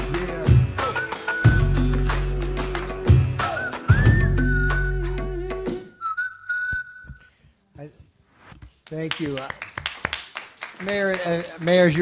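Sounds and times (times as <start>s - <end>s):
high whistle-like tone: 0.8s - 1.8s, 3.4s - 7.3s.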